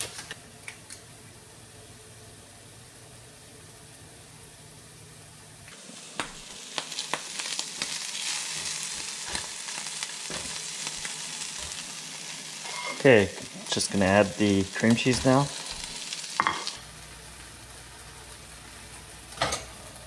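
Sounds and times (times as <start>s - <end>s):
food sizzling in a pan: 5.7s - 20.0s.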